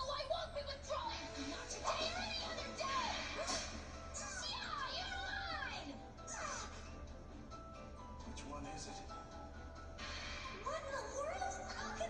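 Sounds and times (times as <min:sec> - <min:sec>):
background music: 0:00.0 - 0:12.0
high-pitched voices crying out: 0:01.5 - 0:07.0.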